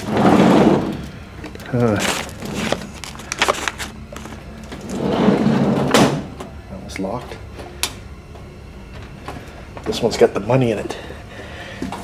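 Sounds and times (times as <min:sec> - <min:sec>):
handling noise: 0:01.5 - 0:04.9.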